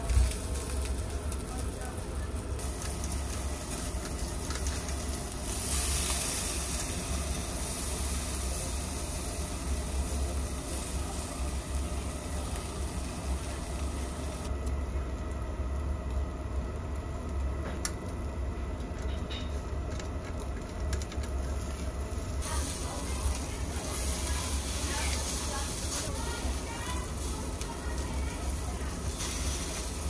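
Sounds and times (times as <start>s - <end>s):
steak sizzling on grill: 0.0s - 14.5s, 22.4s - 30.0s.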